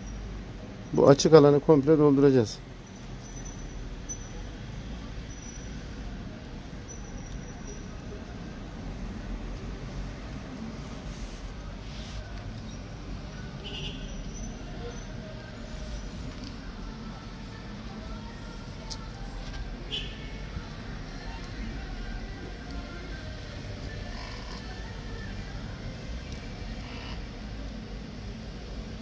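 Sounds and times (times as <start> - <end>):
faint indistinct voices: 0.0 - 29.0.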